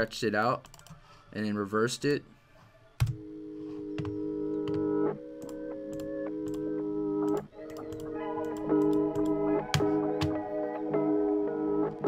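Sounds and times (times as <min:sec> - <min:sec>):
reversed melody loop: 0:03.0 - 0:12.0.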